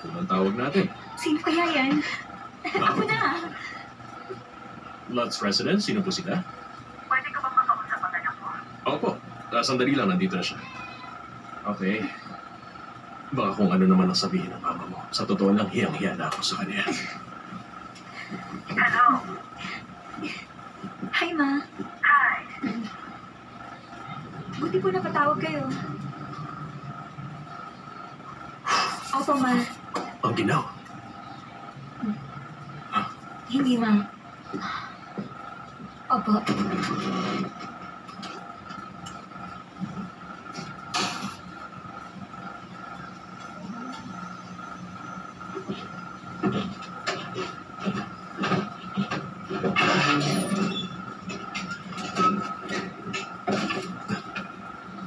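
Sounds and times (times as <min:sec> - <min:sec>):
thin high whine: 0:36.1 - 0:55.0.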